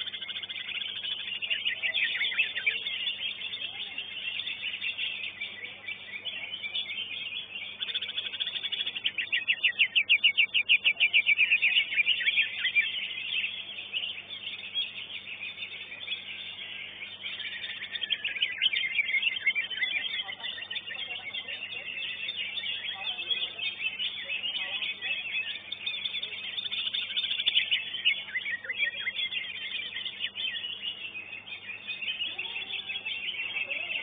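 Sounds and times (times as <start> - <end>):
leafbird twittering song: 0.0 - 34.0.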